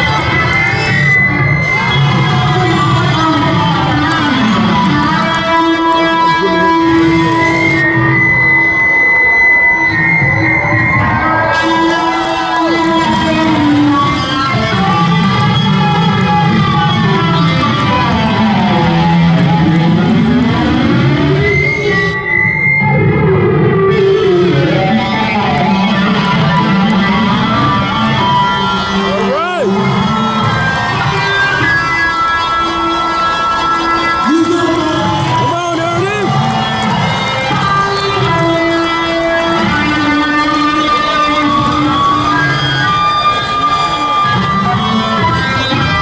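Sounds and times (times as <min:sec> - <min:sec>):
band playing: 0:00.0 - 0:22.2, 0:22.8 - 0:46.0
electric guitar solo: 0:00.0 - 0:46.0.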